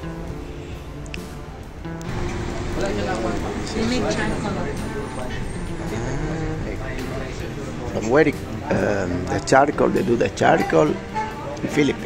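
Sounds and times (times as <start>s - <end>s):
dump truck diesel engine rumble: 2.0s - 10.0s
indistinct voices: 2.0s - 12.0s.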